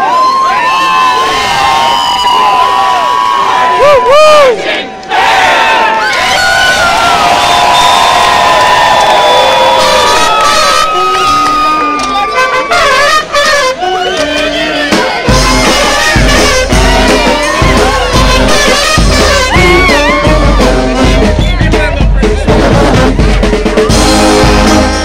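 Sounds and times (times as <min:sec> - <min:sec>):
large crowd cheering and shouting: 0:00.0 - 0:25.0.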